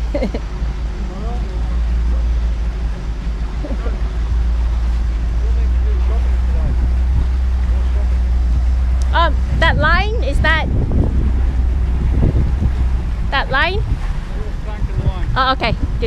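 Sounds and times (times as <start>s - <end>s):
faint voices: 0.0s - 16.0s
wind rumbling on microphone: 0.0s - 16.0s.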